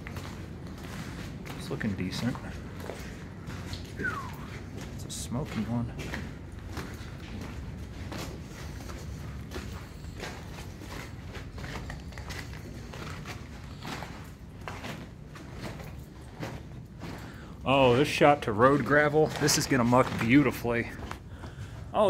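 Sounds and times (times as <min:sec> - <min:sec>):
boots crunching over broken rock: 0:00.0 - 0:22.0
steady low rumble: 0:00.0 - 0:22.0.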